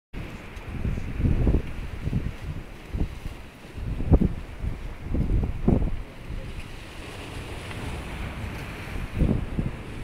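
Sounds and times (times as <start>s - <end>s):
sea waves breaking over boulders: 0.2s - 10.0s
wind buffeting microphone: 0.2s - 10.0s.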